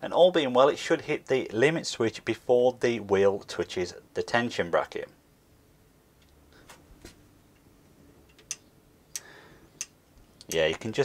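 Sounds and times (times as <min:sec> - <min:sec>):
sharp clicks: 0:08.3 - 0:10.6.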